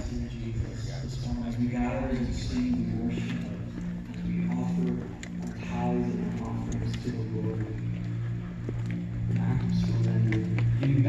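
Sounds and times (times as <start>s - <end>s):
person speaking: 0.0s - 8.2s
footsteps on sidewalk: 0.0s - 11.0s
worship music over loudspeakers: 0.0s - 11.0s.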